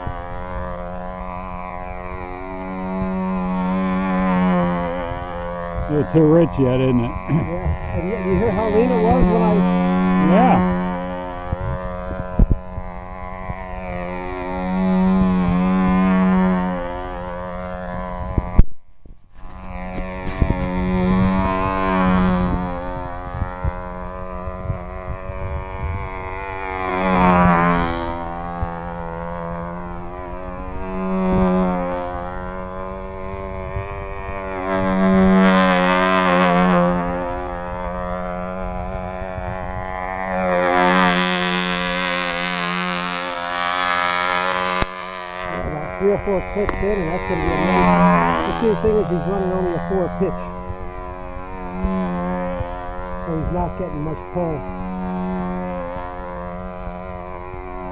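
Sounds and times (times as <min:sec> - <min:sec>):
model plane engine buzzing: 0:00.0 - 0:18.7, 0:19.3 - 0:57.9
person speaking: 0:05.9 - 0:10.8, 0:45.5 - 0:50.6, 0:53.3 - 0:54.7.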